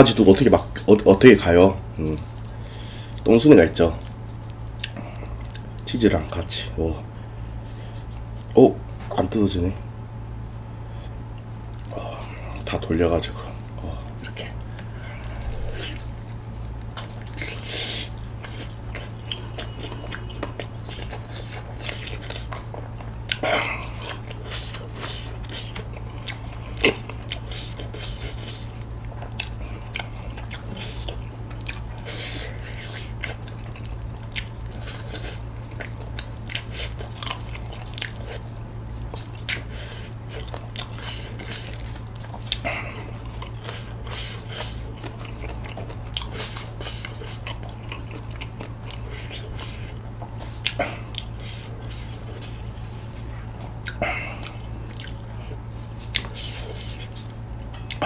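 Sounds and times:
steady low hum: 0:00.0 - 0:58.0
chewing and biting chicken: 0:02.0 - 0:06.4, 0:11.0 - 0:58.0.

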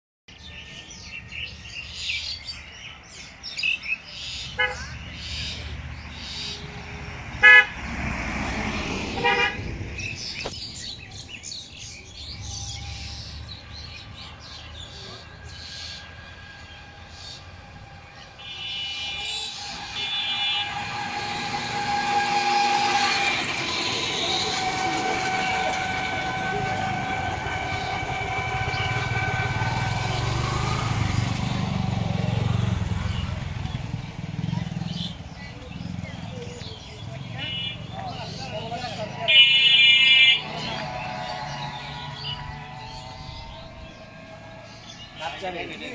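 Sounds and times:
passing vehicles engine rumble: 0:00.4 - 0:45.9
vehicle horns tooting: 0:04.5 - 0:05.0, 0:07.4 - 0:08.0, 0:09.0 - 0:10.1, 0:12.4 - 0:33.4, 0:37.2 - 0:45.9.

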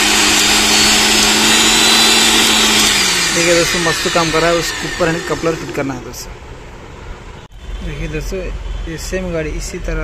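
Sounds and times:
mixer grinder motor whine: 0:00.0 - 0:06.3.

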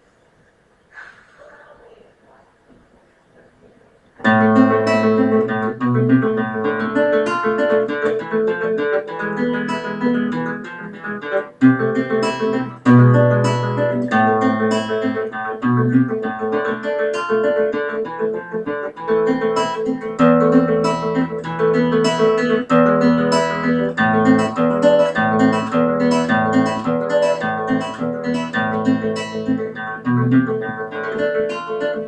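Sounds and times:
classical guitar plucked: 0:04.2 - 0:32.0.

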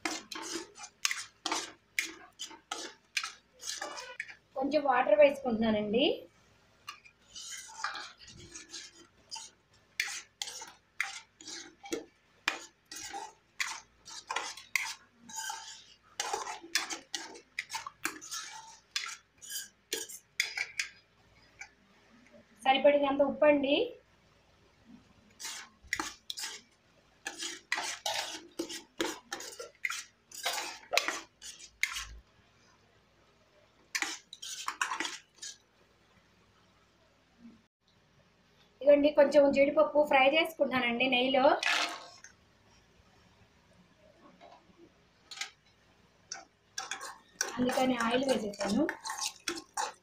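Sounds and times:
spoon scraping a pan: 0:00.0 - 0:04.4, 0:06.8 - 0:21.7, 0:25.3 - 0:32.2, 0:33.8 - 0:35.6, 0:45.3 - 0:50.0.

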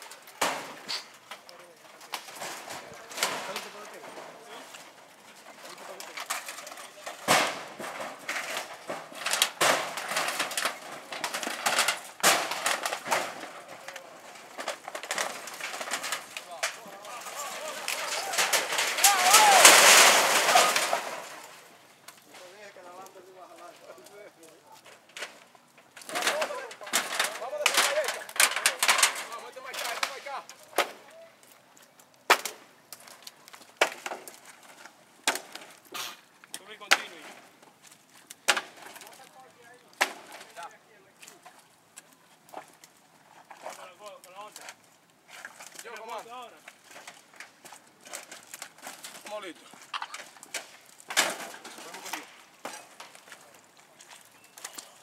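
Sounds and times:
wooden sticks cracking and snapping: 0:00.0 - 0:55.0.

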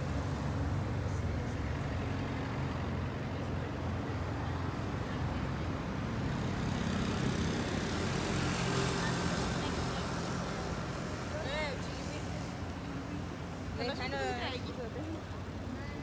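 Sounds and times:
street noise: 0:00.0 - 0:16.0.

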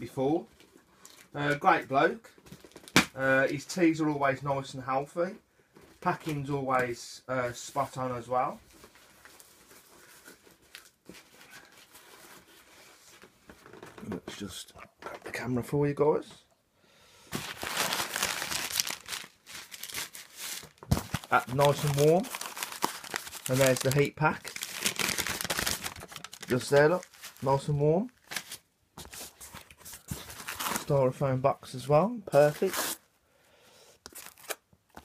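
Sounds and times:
packing paper crinkling: 0:17.3 - 0:31.0, 0:34.1 - 0:35.0.

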